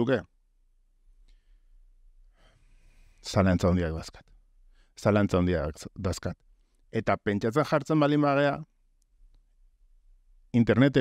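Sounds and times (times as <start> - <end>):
breath into microphone: 1.2 - 3.3, 4.6 - 5.0.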